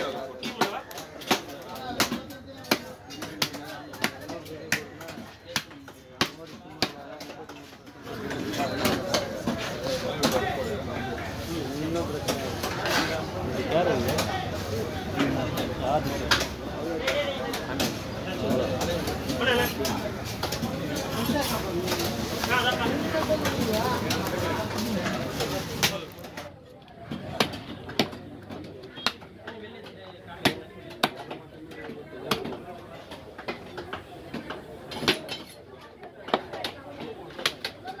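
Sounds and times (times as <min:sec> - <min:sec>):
chatter of voices: 0:00.0 - 0:38.0.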